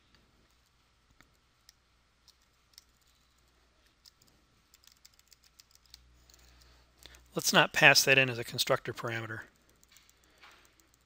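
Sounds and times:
keyboard and mouse clicks: 0.5s - 6.7s, 9.6s - 11.0s.

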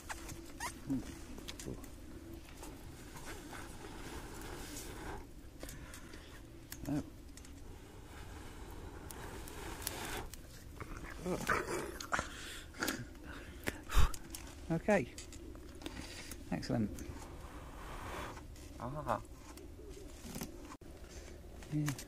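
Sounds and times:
person blowing on charcoal: 0.0s - 14.4s, 17.0s - 19.3s.

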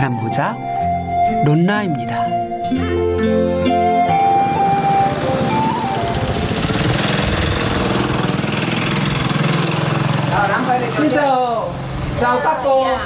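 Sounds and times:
flute-like background music: 0.0s - 7.8s
engine running: 3.0s - 12.4s.

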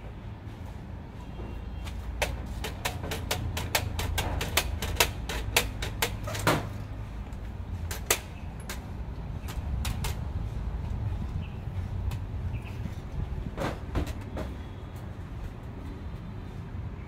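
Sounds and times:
sharp plastic clicks and taps: 1.9s - 6.7s, 7.3s - 10.2s.

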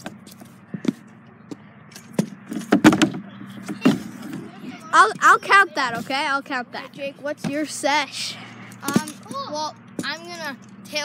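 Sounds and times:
scooter clattering on plywood ramps: 2.1s - 4.4s.

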